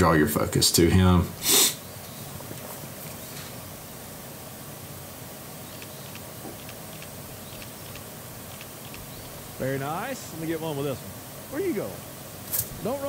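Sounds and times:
quiet outdoor hiss: 0.0 - 13.0.

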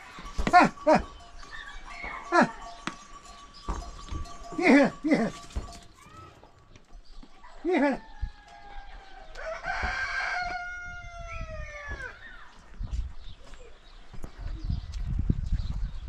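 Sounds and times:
rooster crowing: 7.8 - 12.2.

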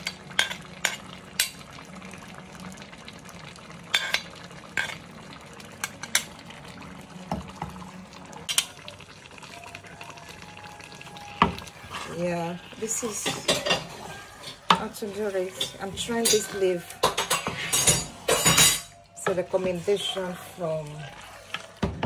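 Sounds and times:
low sizzle from pot: 0.0 - 22.0
wooden spatula stirring soup: 9.4 - 18.3, 19.2 - 22.0.

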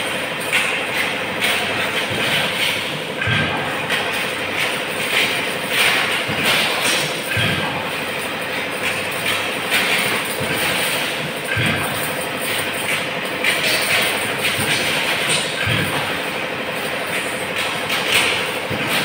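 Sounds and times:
workshop machinery clattering: 0.0 - 19.0.

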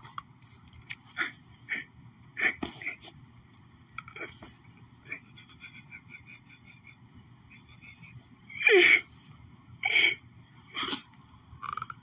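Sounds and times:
person wheezing squeaky laughter: 4.1 - 9.2, 9.8 - 11.1.

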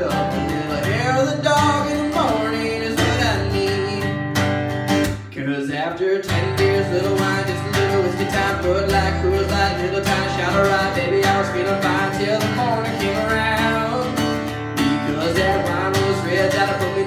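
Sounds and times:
acoustic guitar strumming: 0.0 - 17.0.

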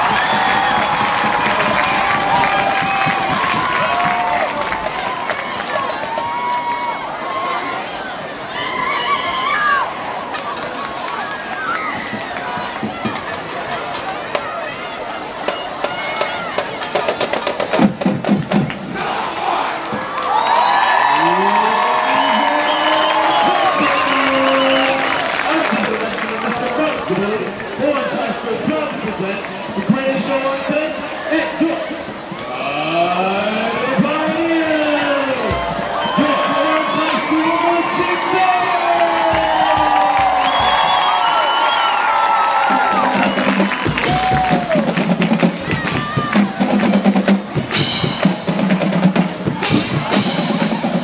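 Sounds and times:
shouts and whoops: 0.0 - 7.9, 8.5 - 10.0, 20.0 - 25.2, 36.0 - 44.9
stadium crowd chattering and cheering: 0.0 - 51.0.

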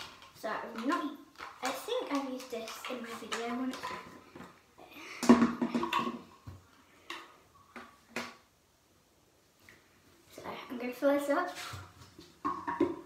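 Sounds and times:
child's voice: 0.4 - 4.2, 10.3 - 11.8
plastic bottle clicks and knocks: 5.2 - 6.2.

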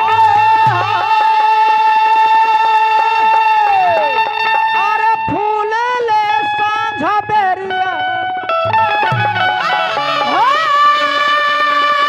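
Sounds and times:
folk music accompaniment: 0.0 - 12.0
person singing a long note: 9.5 - 12.0.

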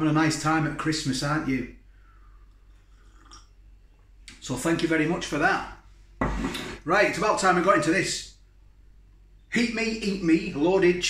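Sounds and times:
person sipping and swallowing: 2.4 - 3.8.

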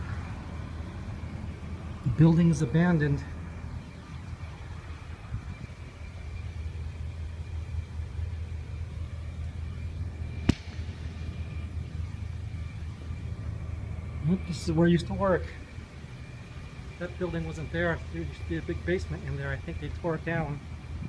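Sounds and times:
road traffic rumble: 0.0 - 21.0.

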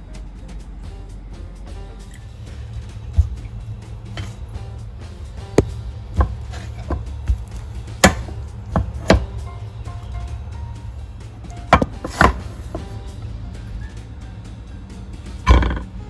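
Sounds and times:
background music: 0.0 - 16.0
spatula scraping: 6.2 - 9.2, 11.7 - 12.9.

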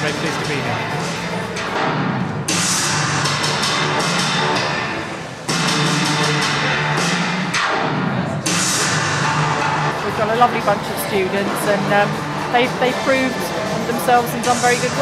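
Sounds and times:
music with percussion: 0.0 - 15.0.

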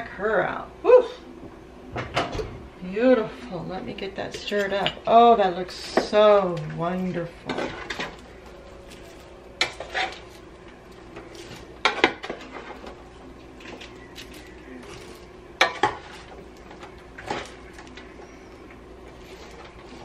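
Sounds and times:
steady low hum: 0.0 - 20.0
popcorn rustling: 6.5 - 20.0.

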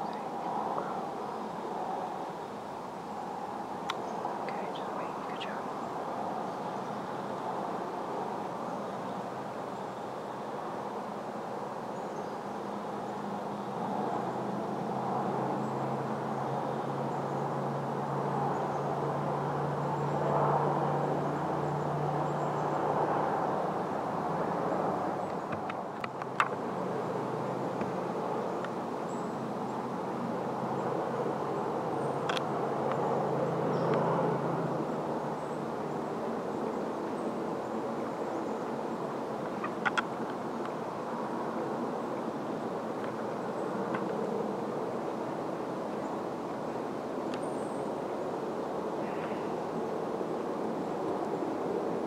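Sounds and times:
outdoor ambience: 0.0 - 52.0.

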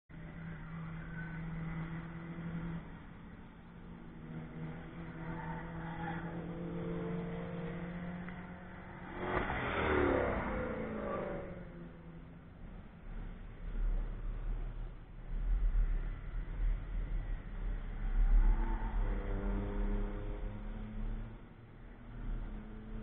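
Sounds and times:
distant race car engines: 0.1 - 23.0
race car passing close by: 3.9 - 12.3, 17.2 - 23.0.

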